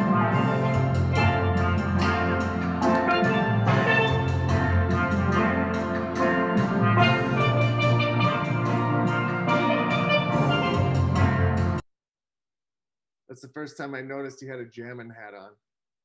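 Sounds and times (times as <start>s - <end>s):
steady bass line: 0.0s - 11.8s
steel pan music: 0.0s - 11.8s.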